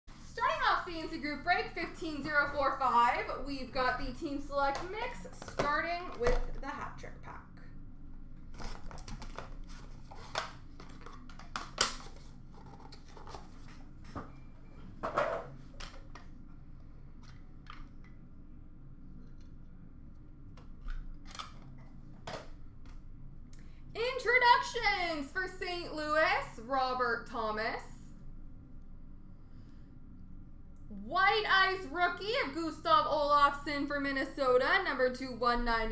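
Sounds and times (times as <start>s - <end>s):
card wrappers snapping and crinkling: 8.5s - 13.6s.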